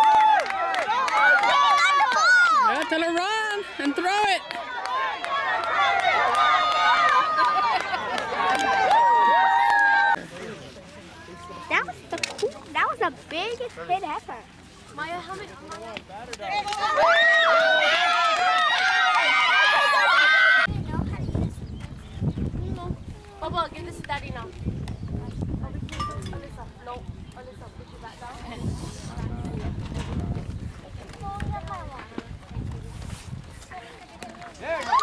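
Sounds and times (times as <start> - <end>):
girls cheering together: 0.0 - 2.8, 3.5 - 10.2, 16.6 - 20.7, 34.7 - 35.0
wind gusting on microphone: 20.6 - 33.8.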